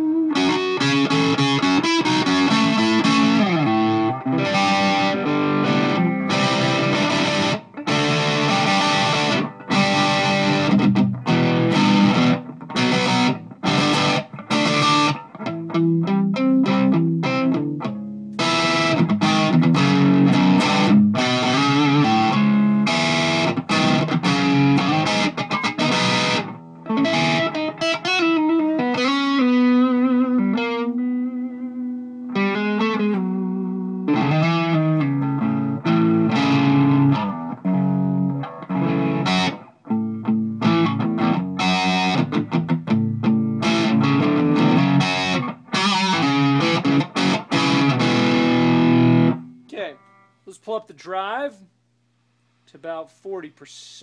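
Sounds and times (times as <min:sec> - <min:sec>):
distorted electric guitar riffs: 0:00.0 - 0:51.6.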